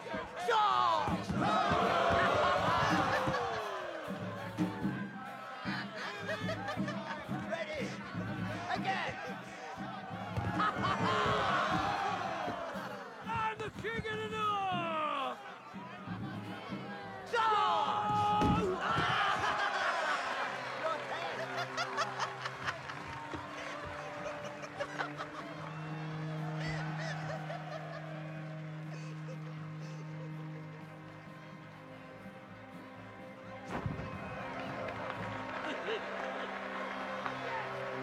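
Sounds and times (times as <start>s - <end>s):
crowd laughing: 0.0s - 13.4s, 14.5s - 38.0s
lively music with a beat: 0.0s - 38.0s.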